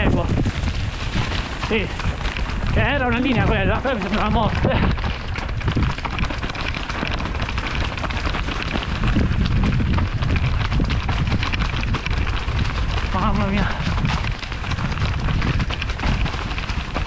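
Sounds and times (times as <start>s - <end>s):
bike rattling: 0.0s - 17.0s
tyres crunching over stones: 0.0s - 17.0s
wind on microphone: 0.0s - 17.0s.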